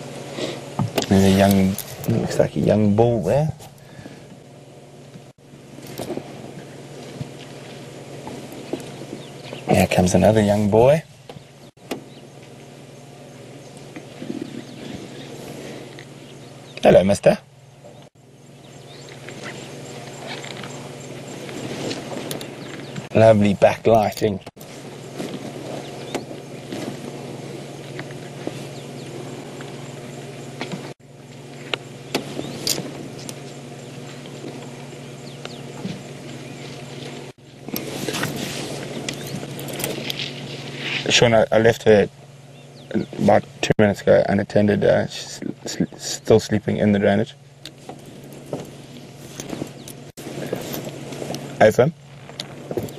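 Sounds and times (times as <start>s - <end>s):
rustles in dry bush: 0.0s - 17.0s, 17.7s - 43.6s, 47.4s - 52.9s
low steady hum: 0.0s - 52.9s
vehicle engine idling: 0.0s - 52.9s.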